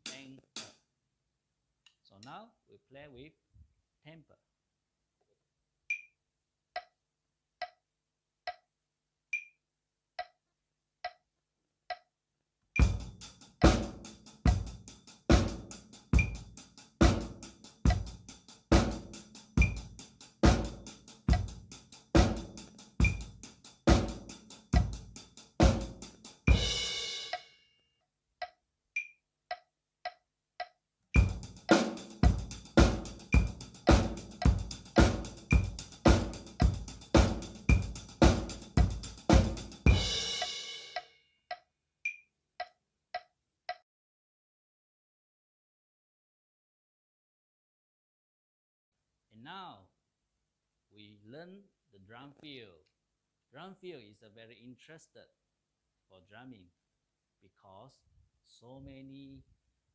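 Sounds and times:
drum kit beat: 0.0 - 0.8, 12.8 - 27.5, 31.2 - 41.1
metronome clicks: 5.9 - 6.1, 9.3 - 9.6, 11.9 - 12.1, 12.8 - 13.0, 16.2 - 16.4, 19.6 - 19.8, 22.6 - 23.3, 28.4 - 31.3, 39.9 - 43.8.

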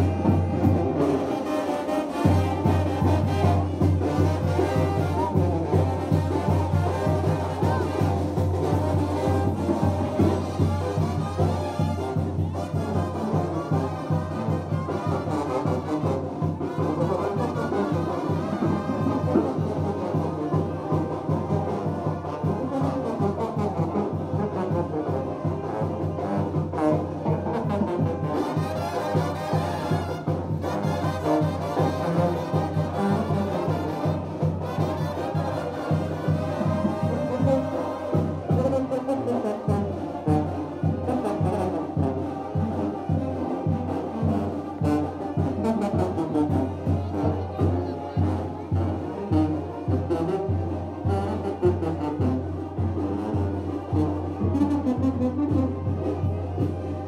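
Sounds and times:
brass band playing dance tune: 0.0 - 57.0.

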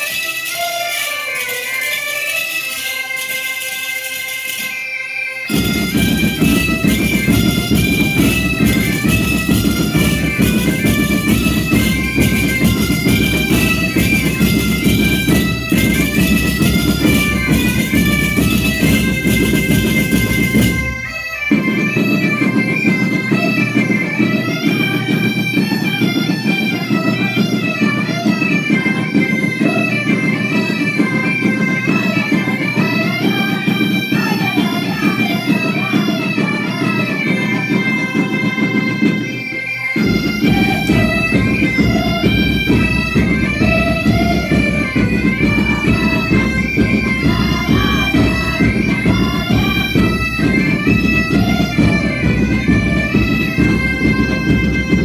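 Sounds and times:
bagpipes playing folk melody: 0.0 - 55.0.

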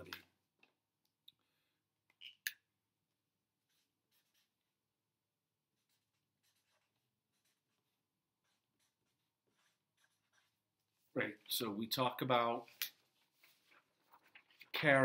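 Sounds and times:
marker scratching while writing: 3.6 - 4.8, 5.7 - 11.1.

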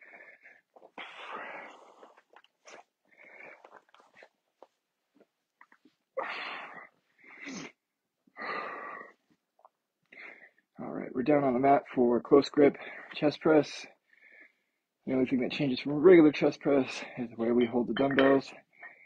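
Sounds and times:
man breathing heavily: 0.0 - 4.4, 6.2 - 9.3, 10.1 - 10.7, 14.0 - 14.9.

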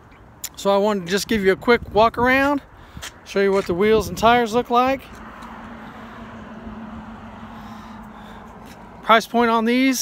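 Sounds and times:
even traffic hum: 0.0 - 10.0.

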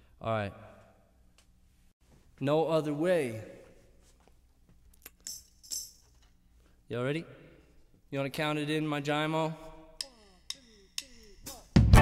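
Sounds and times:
man speaking: 2.4 - 3.7
hand percussion jingling: 5.2 - 6.1, 10.0 - 11.8.

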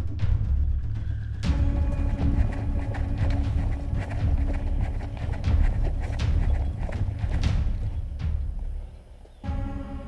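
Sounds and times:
wind rumble on microphone: 1.3 - 9.5
footsteps crunching on dry soil: 1.5 - 9.6.

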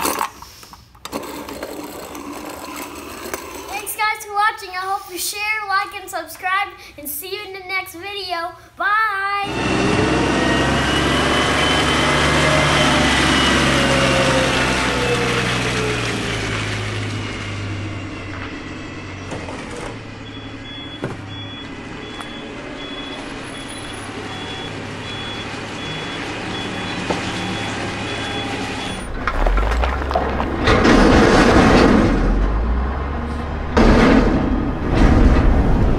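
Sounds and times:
garbage truck running: 9.5 - 35.9
reversing beeps: 20.2 - 29.1.

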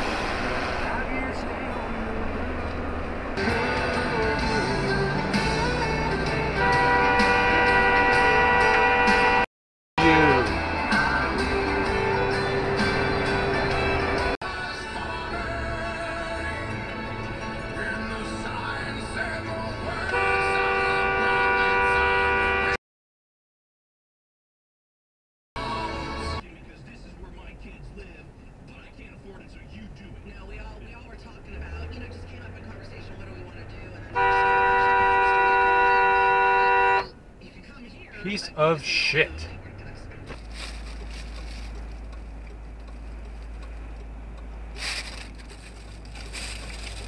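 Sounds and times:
car engine and road noise: 0.0 - 22.8, 25.6 - 47.0
car horn long two-note blast: 6.0 - 10.6, 19.9 - 22.8, 34.1 - 37.2.

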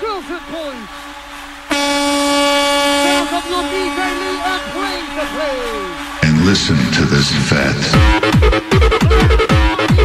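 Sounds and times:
air horn sound effect: 0.0 - 10.0
club dance music mix: 0.0 - 10.0
effected voice of mc: 3.0 - 10.0.

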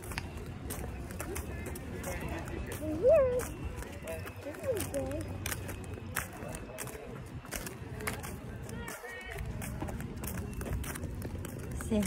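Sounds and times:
distant voices: 0.0 - 12.0
footsteps on asphalt: 0.0 - 12.0.

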